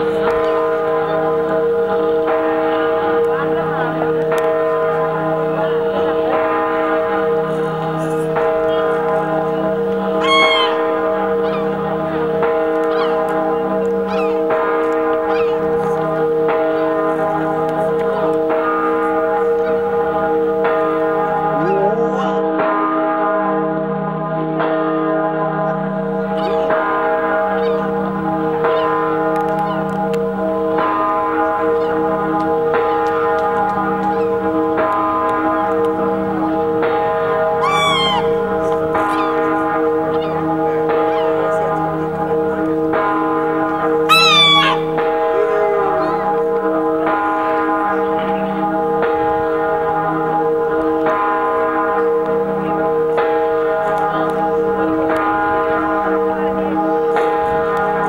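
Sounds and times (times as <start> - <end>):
large bell tolling: 0.0 - 58.0
seagull crying: 10.2 - 11.8, 12.8 - 13.4, 14.1 - 14.5, 15.3 - 15.7, 26.4 - 26.7, 37.6 - 39.6, 41.0 - 41.5, 44.1 - 46.3.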